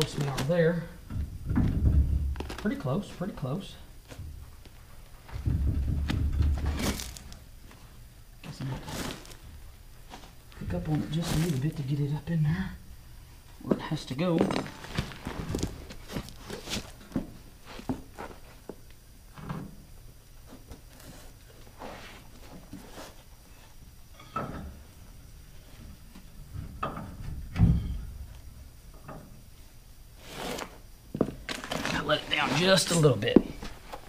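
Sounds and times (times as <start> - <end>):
knocks and clunks under vehicle: 1.0 - 2.5, 5.2 - 6.9, 26.4 - 28.3.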